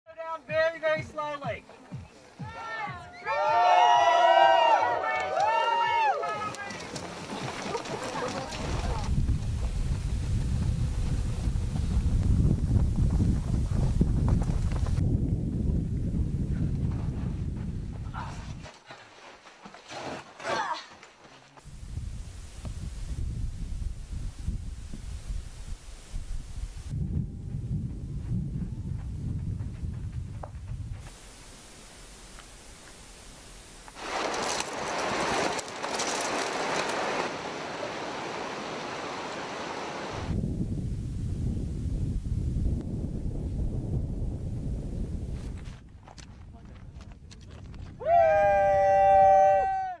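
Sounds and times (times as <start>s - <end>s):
people yelling in celebration: 2.4s - 6.9s, 48.0s - 50.0s
wind buffeting microphone: 5.7s - 18.7s, 21.6s - 34.2s, 39.7s - 49.7s.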